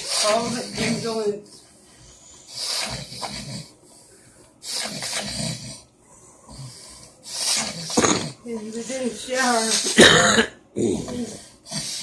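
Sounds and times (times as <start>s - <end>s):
man's rasping snore-like breathing: 0.0s - 1.4s, 2.5s - 3.8s, 4.6s - 8.4s, 10.8s - 12.0s.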